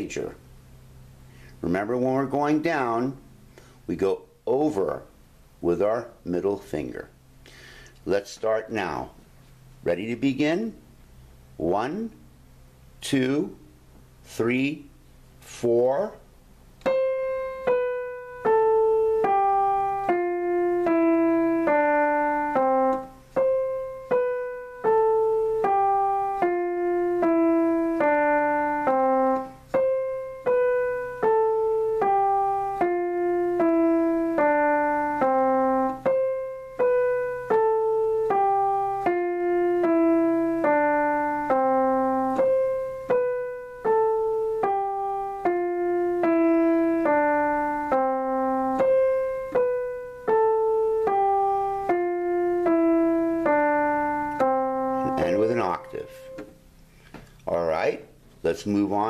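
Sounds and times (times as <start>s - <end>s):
digital piano scale: 1.6s - 7.2s, 9.8s - 10.9s, 13.0s - 56.8s.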